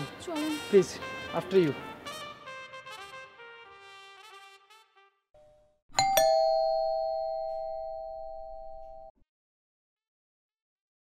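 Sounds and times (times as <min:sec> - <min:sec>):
two-note doorbell chime: 0:05.4 - 0:09.1.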